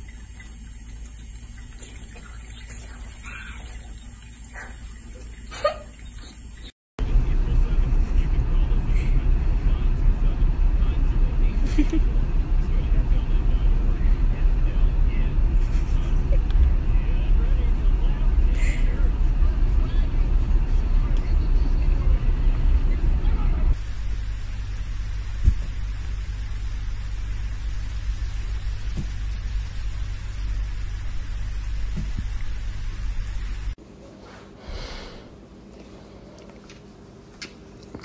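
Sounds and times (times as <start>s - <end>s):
car road and engine rumble: 7.0s - 33.8s.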